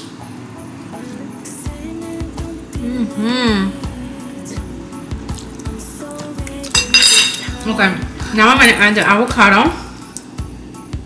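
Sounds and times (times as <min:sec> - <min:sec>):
background music with steady beat: 0:00.0 - 0:11.0
fork clinking on ceramic plate: 0:06.7 - 0:07.6.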